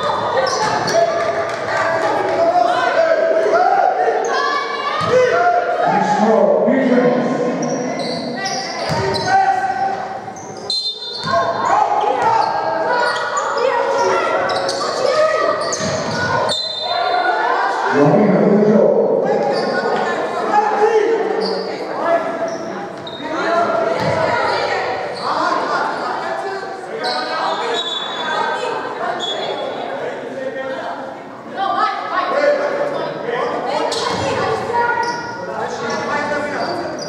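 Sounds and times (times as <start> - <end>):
basketball bouncing on hardwood: 24.0 - 24.2.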